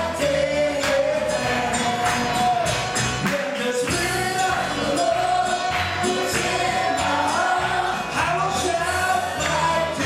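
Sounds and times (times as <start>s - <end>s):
band playing: 0.0s - 10.0s
voices singing gospel: 0.0s - 10.0s.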